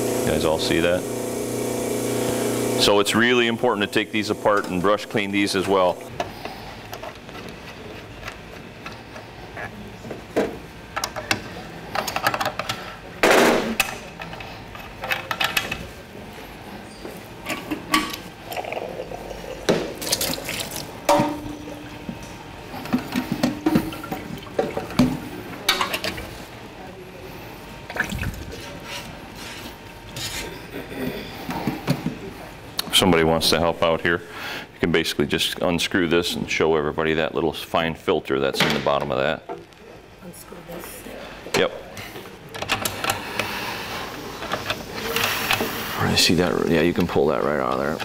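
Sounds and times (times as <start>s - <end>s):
water splashing in a sink: 19.9s - 21.0s.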